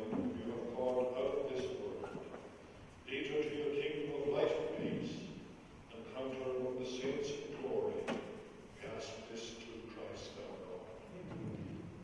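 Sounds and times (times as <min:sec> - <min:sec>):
man speaking: 0:00.0 - 0:02.4, 0:03.0 - 0:11.1.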